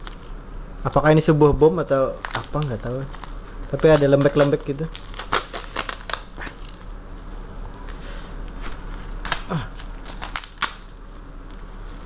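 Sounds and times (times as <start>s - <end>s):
plastic wrapping crinkling: 0.0s - 12.0s.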